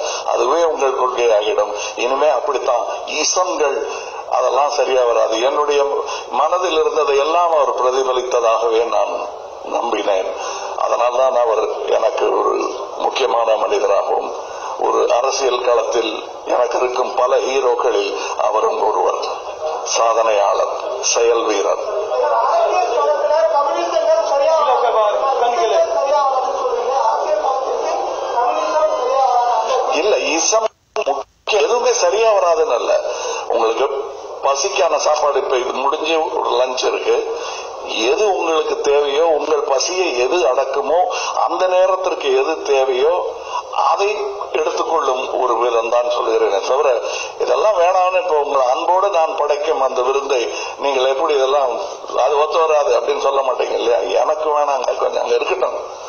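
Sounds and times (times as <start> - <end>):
man speaking into microphone: 0.0 - 56.0.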